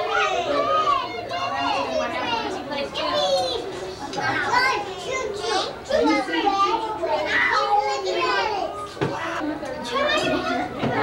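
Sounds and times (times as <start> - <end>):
young children talking: 0.0 - 11.0.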